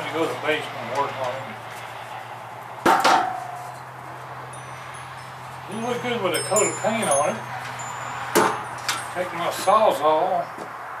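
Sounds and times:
wind chimes tinkling: 3.6 - 10.3
sharp metal clank: 6.5 - 9.2.

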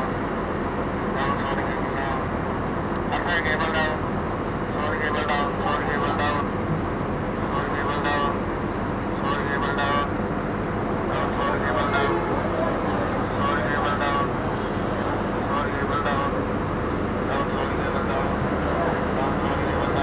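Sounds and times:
road traffic: 0.0 - 20.0
people talking: 1.2 - 2.3, 3.1 - 4.0, 4.7 - 6.5, 7.5 - 8.4, 9.2 - 10.1, 11.1 - 16.4, 17.3 - 20.0.

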